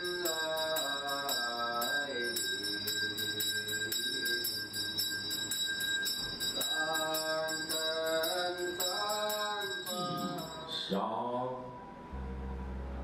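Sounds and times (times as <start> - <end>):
person chanting: 0.0 - 4.6, 6.6 - 13.0
small bell struck: 0.0 - 10.8.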